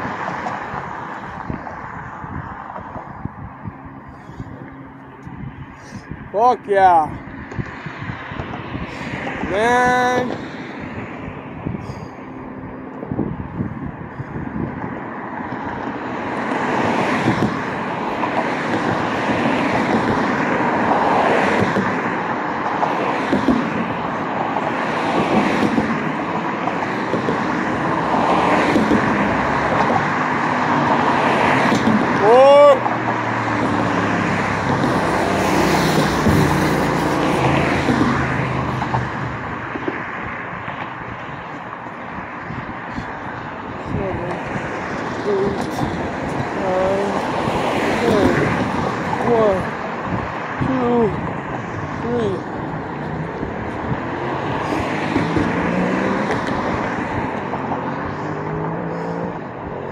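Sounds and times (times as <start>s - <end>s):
cars passing: 0.0s - 59.9s.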